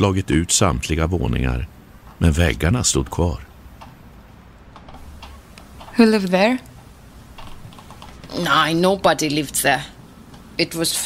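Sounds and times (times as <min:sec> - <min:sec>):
low background hum: 0:00.0 - 0:11.0
faint ticking: 0:01.1 - 0:10.8.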